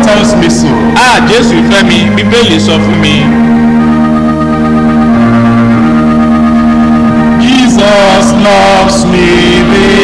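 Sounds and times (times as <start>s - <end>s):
organ chord: 0.0s - 10.0s.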